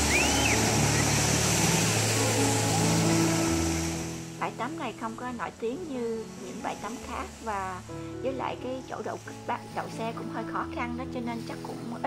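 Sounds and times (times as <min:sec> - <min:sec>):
small waves breaking on shore: 0:00.0 - 0:04.4
distant motorboat engine drone: 0:00.0 - 0:07.9.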